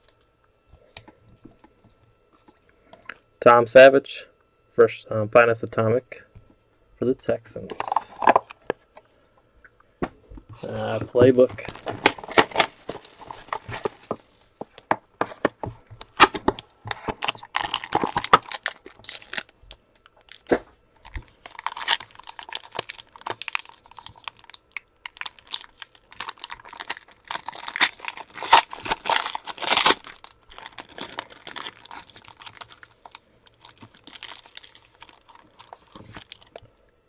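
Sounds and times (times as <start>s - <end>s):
foil wrapper crinkling and tearing: 10.6s - 14.4s, 16.0s - 36.7s.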